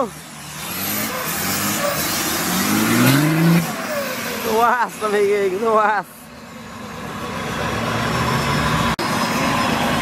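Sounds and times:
vehicle engine revving: 0:00.0 - 0:05.2.

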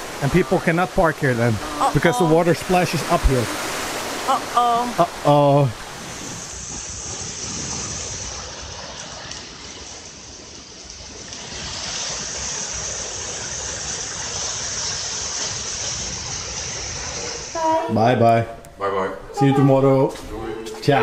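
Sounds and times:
water rushing down waterfall: 0:00.0 - 0:18.3.

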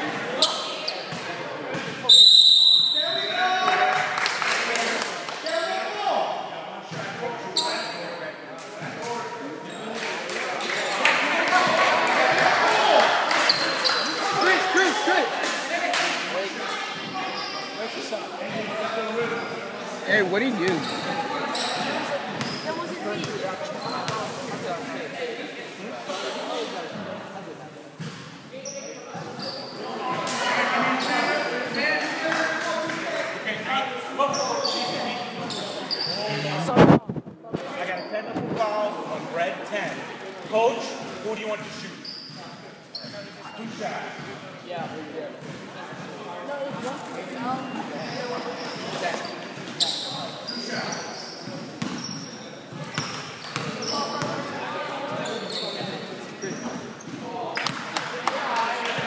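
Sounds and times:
people talking and calling out: 0:00.0 - 0:59.0
referee's whistle: 0:02.1 - 0:03.4.

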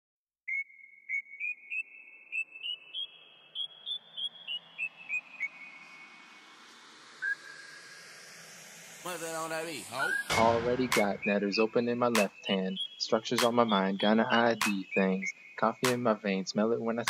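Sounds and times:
whistled tune: 0:00.5 - 0:04.3, 0:09.9 - 0:16.0
faint hiss: 0:08.8 - 0:11.0.

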